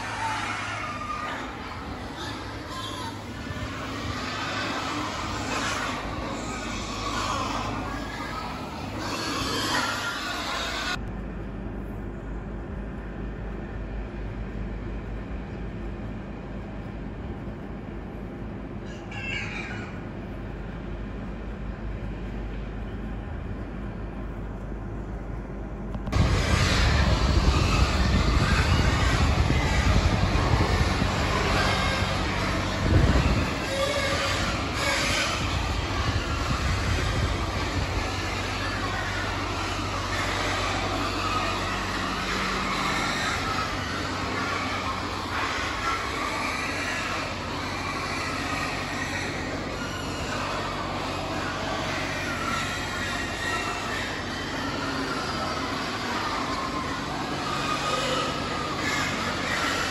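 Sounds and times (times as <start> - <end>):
many pigs: 0.0 - 11.0, 18.8 - 20.6, 26.1 - 59.9
machinery hum: 0.0 - 59.9.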